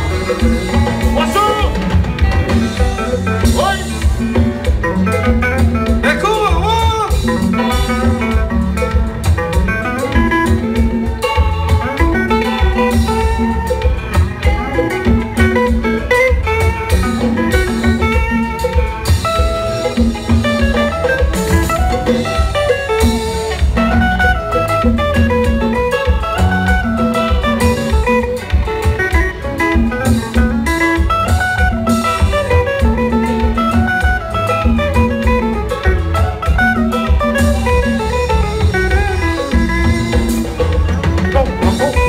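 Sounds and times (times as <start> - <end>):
live band playing: 0.0 - 42.0.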